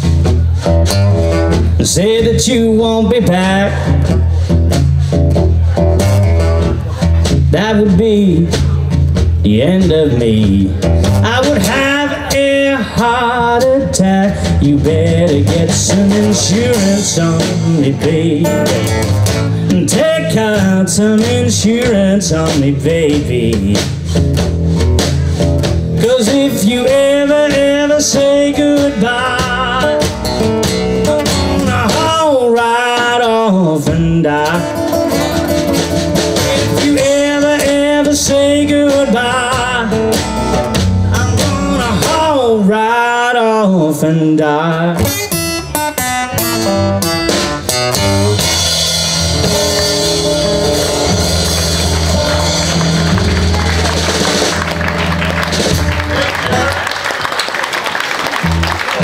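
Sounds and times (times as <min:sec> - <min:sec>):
guitar lead with bent notes: 0:00.0 - 0:42.9, 0:44.6 - 0:56.9
live blues band playing: 0:00.0 - 0:59.0.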